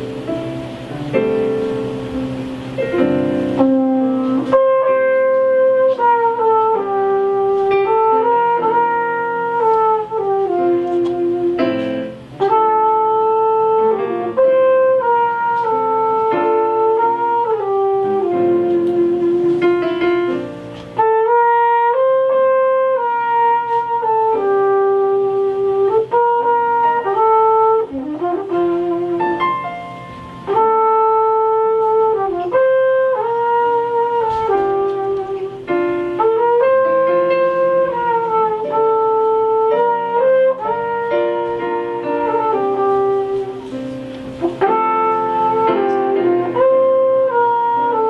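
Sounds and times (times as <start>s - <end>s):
digital piano: 0.0s - 48.0s
flugelhorn slow melody: 0.0s - 48.0s.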